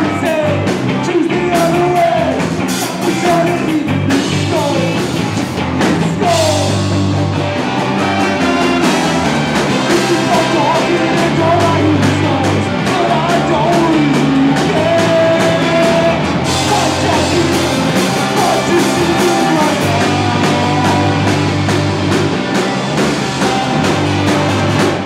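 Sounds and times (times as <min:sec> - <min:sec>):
ska-punk band playing: 0:00.0 - 0:25.0
horn section: 0:07.3 - 0:25.0.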